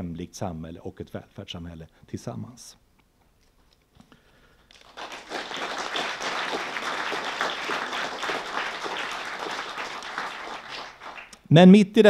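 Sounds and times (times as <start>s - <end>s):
audience applauding: 4.7s - 11.4s.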